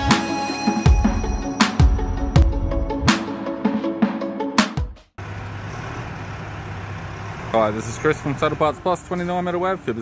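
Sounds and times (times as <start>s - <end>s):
engine humming: 5.2s - 10.0s.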